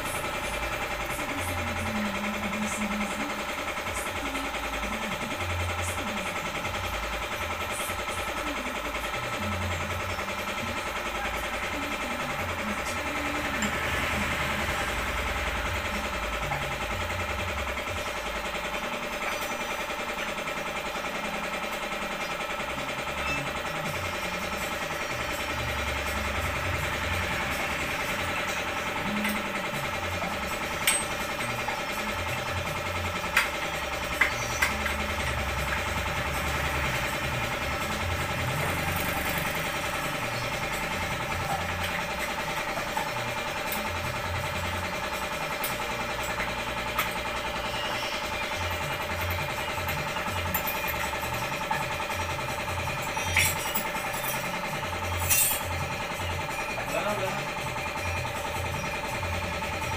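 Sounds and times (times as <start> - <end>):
workshop machinery humming: 0.0 - 59.9.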